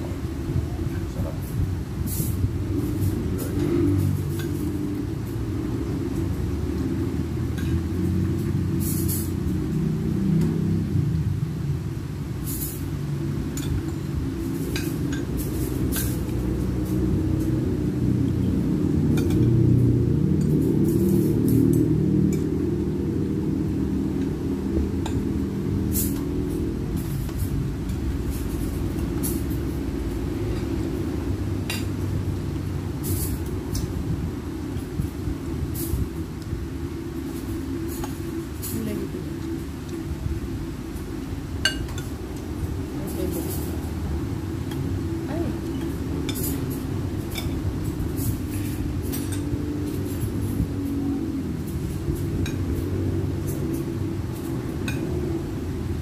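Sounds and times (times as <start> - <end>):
constant low rumble: 0.0 - 56.0
cutlery clinking on plates: 48.5 - 50.1.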